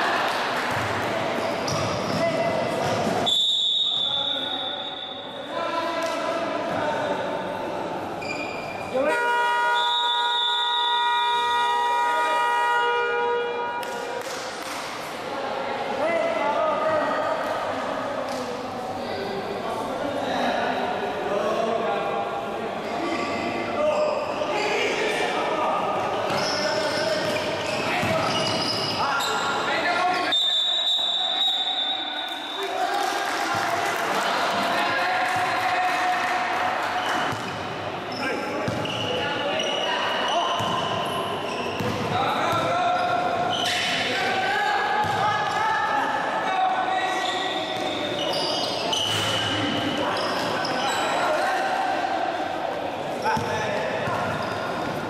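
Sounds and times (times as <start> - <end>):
echoing voices: 0.0 - 55.0.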